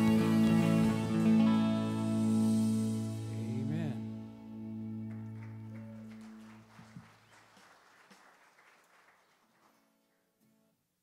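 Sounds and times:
electric guitar and bass chord: 0:00.0 - 0:06.2.

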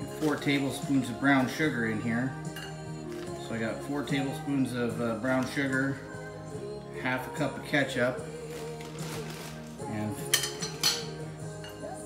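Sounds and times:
background music: 0:00.0 - 0:12.0
utensil clinking on glass bowl: 0:10.2 - 0:11.8.

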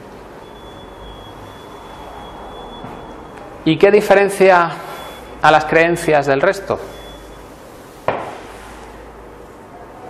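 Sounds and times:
high-pitched whine: 0:00.4 - 0:03.9.

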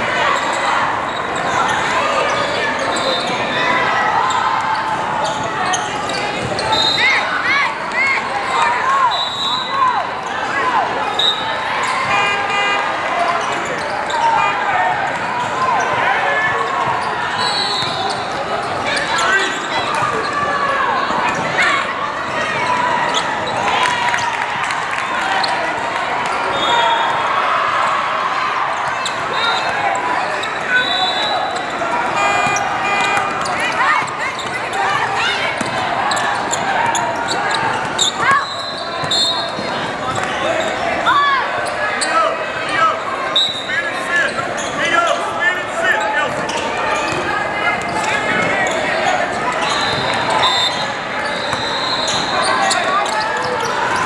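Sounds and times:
many voices talking and calling: 0:00.0 - 0:54.0.

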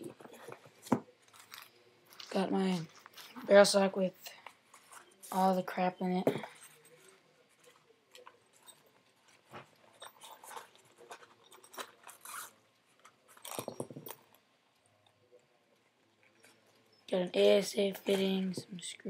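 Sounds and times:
small parts rummaged in cloth: 0:00.0 - 0:03.6, 0:04.2 - 0:15.1.

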